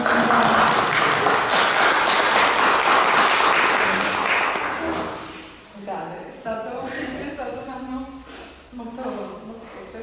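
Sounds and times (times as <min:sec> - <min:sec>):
audience applauding: 0:00.0 - 0:05.1.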